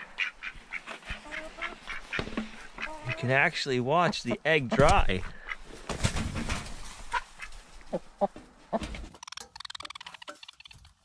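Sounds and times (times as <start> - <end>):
hen clucking softly: 0.0 - 3.3, 7.1 - 8.4.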